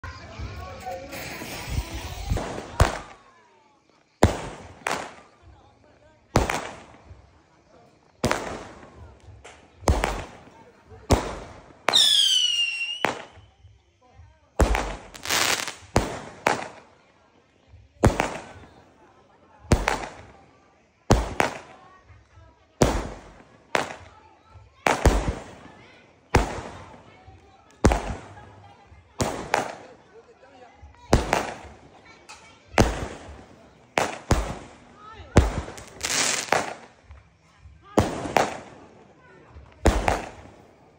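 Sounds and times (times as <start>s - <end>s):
firework bangs: 0.2s - 3.3s, 4.2s - 5.6s, 6.3s - 13.5s, 14.6s - 17.0s, 18.0s - 18.9s, 19.6s - 20.5s, 21.1s - 30.0s, 30.8s - 40.9s.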